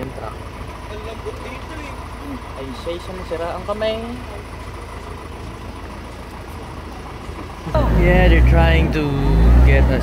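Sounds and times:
vehicle engine idling: 0.0s - 10.0s
voices: 0.0s - 10.0s.

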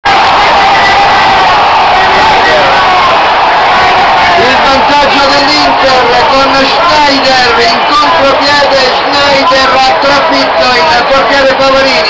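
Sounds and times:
stadium crowd noise: 0.0s - 12.0s
commentator shouting: 4.2s - 12.0s.

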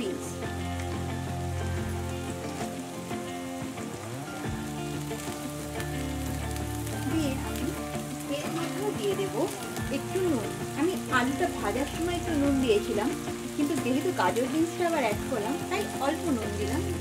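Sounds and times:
soft background music: 0.0s - 17.0s
vegetables sizzling in hot oil: 0.0s - 17.0s.

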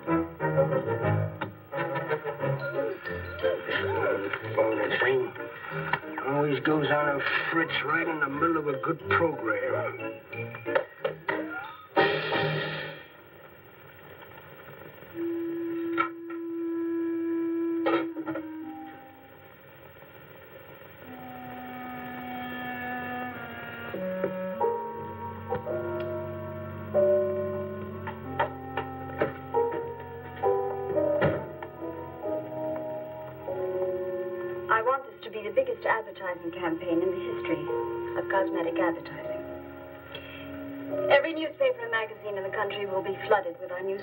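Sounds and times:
low musical tones: 0.0s - 11.9s, 14.9s - 44.0s
soft film score: 0.0s - 44.0s
indistinct speech: 34.7s - 39.4s, 41.1s - 44.0s.

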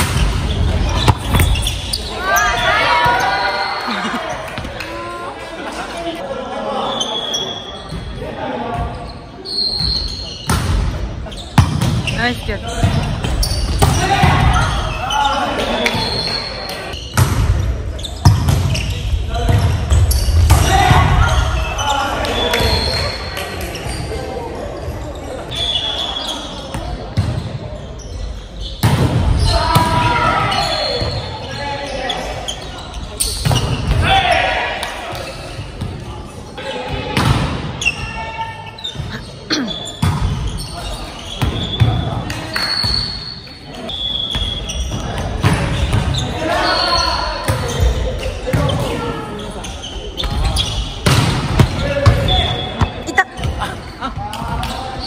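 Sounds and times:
players calling and shouting: 0.0s - 55.0s.

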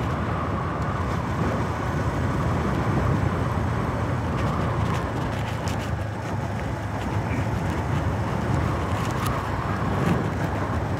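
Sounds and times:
wind rushing over microphone: 0.0s - 10.9s.

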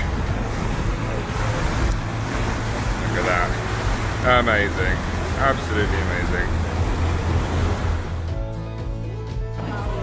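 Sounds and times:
wind and water rushing: 0.0s - 8.4s
boat engine rumble: 0.0s - 10.0s
music with sustained chords: 0.0s - 10.0s.

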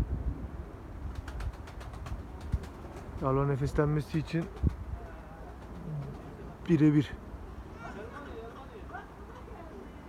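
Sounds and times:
wind buffeting microphone: 0.0s - 7.5s.

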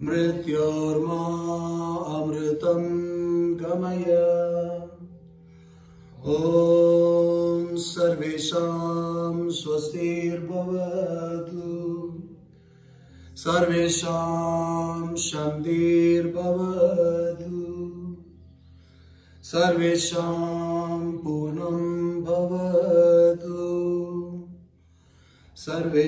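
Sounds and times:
man chanting: 19.4s - 24.5s.

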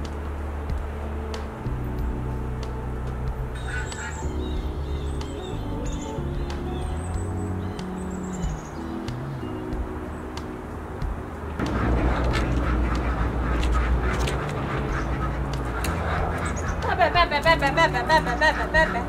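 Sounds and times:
background music: 0.0s - 19.0s
ducks quacking: 3.6s - 6.0s, 11.6s - 19.0s.

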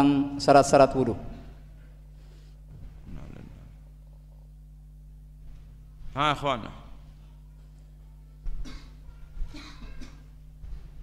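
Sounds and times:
low electrical hum: 0.0s - 11.0s
faint murmur of voices: 6.8s - 10.4s.

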